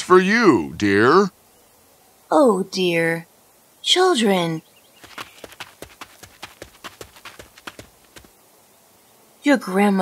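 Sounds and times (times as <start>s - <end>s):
hurried footsteps on hard floor: 5.0s - 8.3s.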